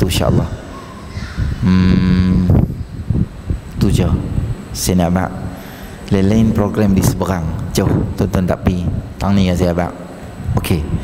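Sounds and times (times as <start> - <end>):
man speaking syllable: 1.6 - 2.7, 6.1 - 10.0.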